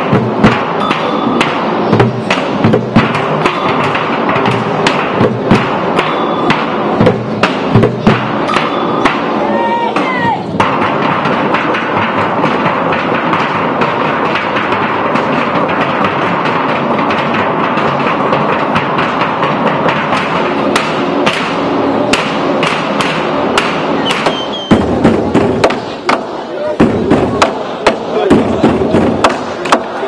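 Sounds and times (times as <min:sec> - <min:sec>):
drumming on metal barrels: 0:00.0 - 0:30.0.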